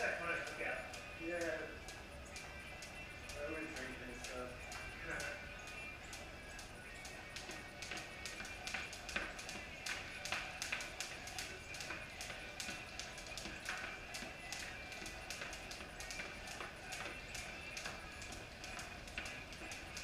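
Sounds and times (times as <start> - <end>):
music playing: 0.0 - 20.0
jump ropes slapping concrete: 2.4 - 20.0.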